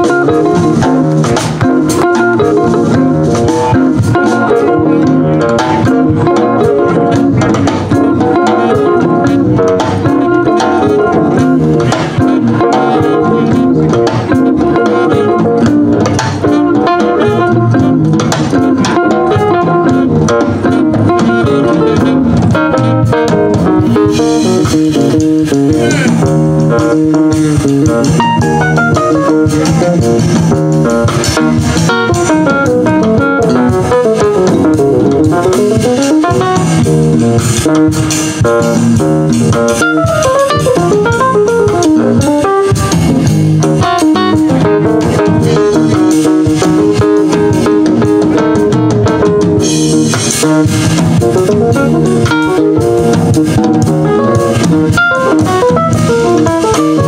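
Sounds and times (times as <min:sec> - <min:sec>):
jazz band playing: 0:00.0 - 0:57.0
sliding bending guitar notes: 0:00.0 - 0:57.0.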